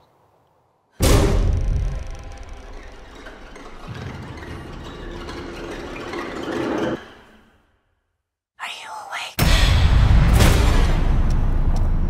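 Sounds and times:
loud hit with deep boom: 1.0 - 2.1, 9.4 - 11.3.

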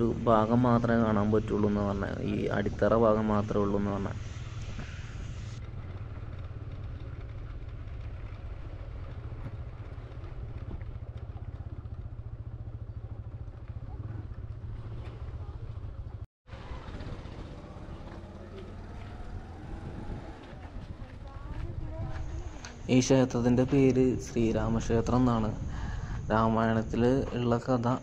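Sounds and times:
motorcycle engine rumbling: 0.0 - 28.0
quiet outdoor ambience: 0.0 - 28.0.

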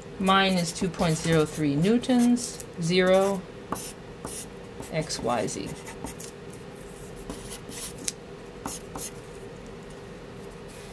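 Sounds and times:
steady low hum: 0.0 - 10.9
marker writing on paper: 3.8 - 5.0, 7.3 - 8.0, 8.7 - 9.1.

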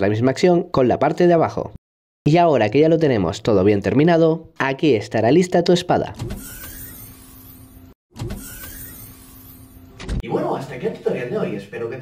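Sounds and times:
whirring sound effect: 6.3 - 10.2.

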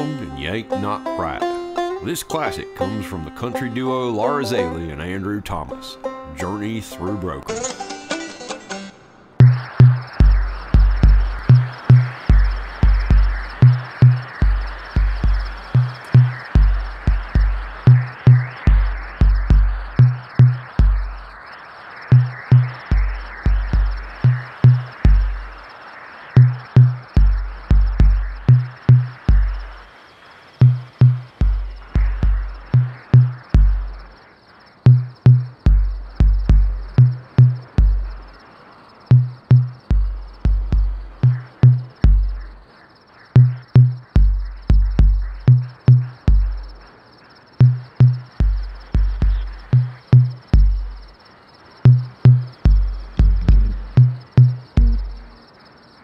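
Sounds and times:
dense crackling noise: 9.2 - 56.0
deep pulsing bass notes: 9.4 - 21.3, 31.4 - 34.0, 35.0 - 38.2, 52.6 - 55.4.

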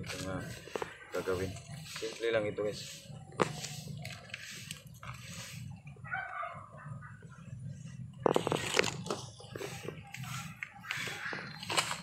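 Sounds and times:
soil rustling: 0.0 - 6.1.

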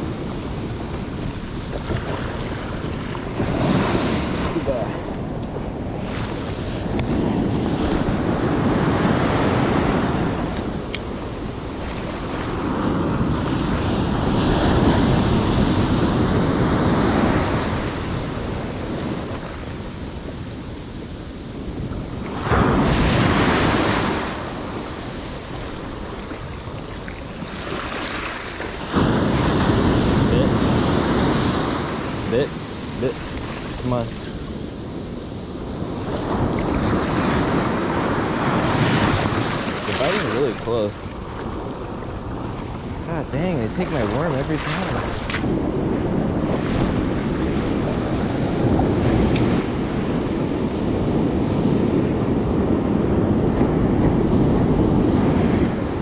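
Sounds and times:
ocean surf washing up beach: 0.0 - 56.0
wind buffeting microphone: 0.0 - 56.0.

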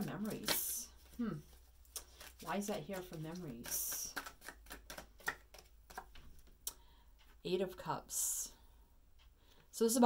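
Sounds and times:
cards snapping and tapping: 1.9 - 6.5.

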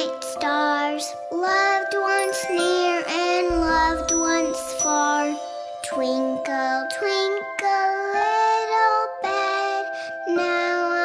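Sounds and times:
child singing: 0.0 - 11.0
gentle music: 0.0 - 11.0.

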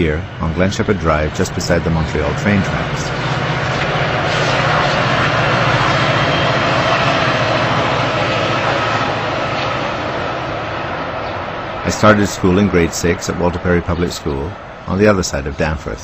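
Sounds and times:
passenger train passing: 0.0 - 16.0.

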